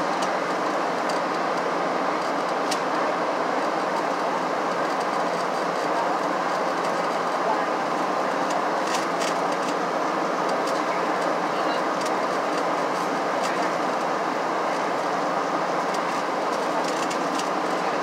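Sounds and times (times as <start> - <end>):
airflow rush in cabin: 0.0 - 18.0
jet engine hum: 0.0 - 18.0.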